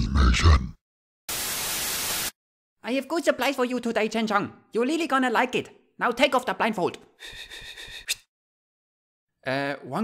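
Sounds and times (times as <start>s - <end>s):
white noise static burst: 1.3s - 2.3s.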